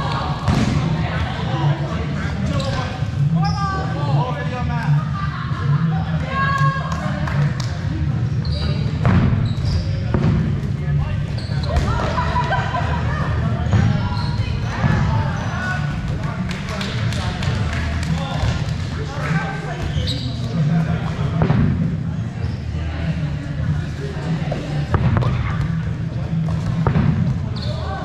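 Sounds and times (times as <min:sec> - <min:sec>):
balls bouncing on gym floor: 0:00.0 - 0:01.1, 0:08.9 - 0:10.8, 0:11.6 - 0:12.2, 0:13.6 - 0:15.3, 0:19.7 - 0:22.0, 0:24.5 - 0:27.8
players calling and chattering: 0:00.0 - 0:28.0.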